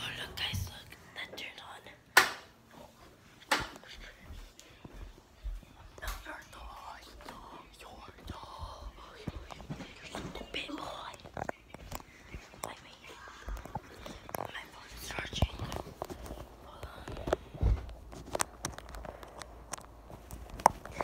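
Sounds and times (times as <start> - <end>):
girl whispering: 0.0 - 2.0, 6.0 - 11.7, 12.4 - 17.3.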